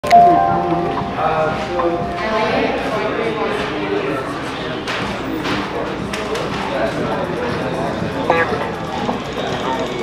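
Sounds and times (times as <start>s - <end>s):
melody through horn bell: 0.1s - 2.6s.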